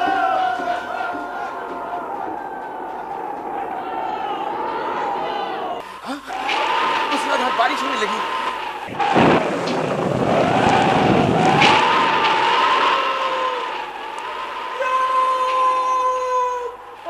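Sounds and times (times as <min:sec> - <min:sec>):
wind howling with whistle: 0:00.0 - 0:17.0
thunder rumble: 0:01.3 - 0:17.0.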